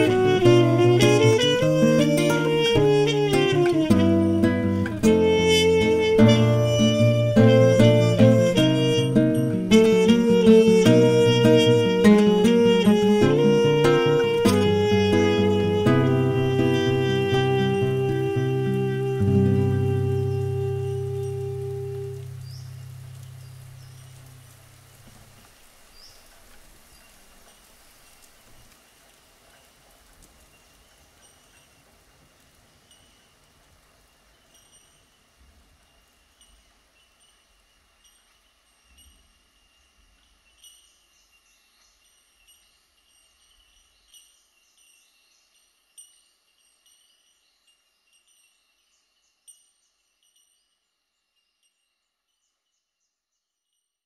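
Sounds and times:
low music notes ringing out: 0.0s - 24.6s
birds chirping: 0.0s - 27.4s
light rain: 0.0s - 48.2s.

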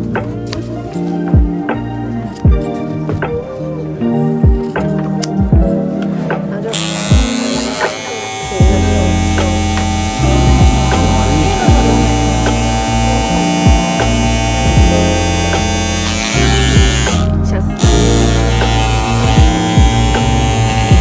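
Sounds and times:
background music: 0.0s - 21.0s
electric carpet trimmer buzzing: 6.7s - 21.0s.

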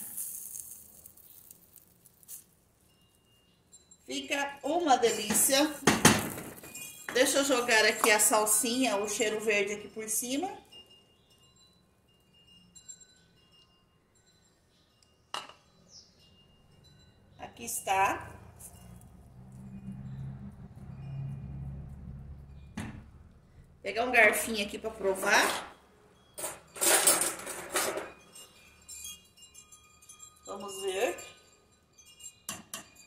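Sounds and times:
metal cutlery rattling and clinking: 26.4s - 28.2s
sharp clink against metal pot: 32.5s - 33.0s.

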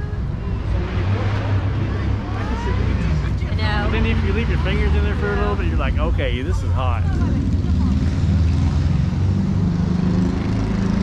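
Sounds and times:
low engine drone: 0.0s - 11.0s.

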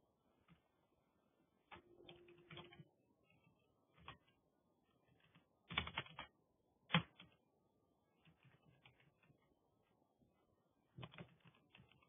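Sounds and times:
keyboard keystrokes: 1.7s - 2.9s, 5.1s - 6.3s.

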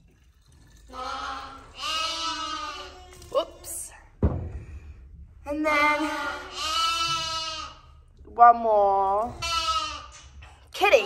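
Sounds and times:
lambs bleating: 0.9s - 3.2s, 6.1s - 7.9s, 9.3s - 10.3s.

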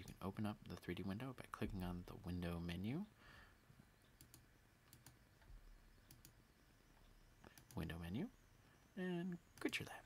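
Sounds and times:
computer mouse clicks: 4.0s - 6.4s, 7.0s - 7.9s.

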